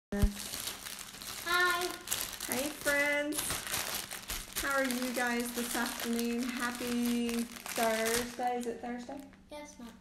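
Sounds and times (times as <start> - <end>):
plastic bag crinkling: 0.2 - 9.4.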